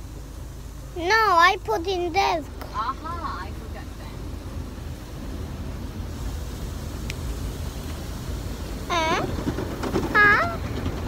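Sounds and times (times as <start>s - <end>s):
car cabin road rumble: 0.0s - 11.0s.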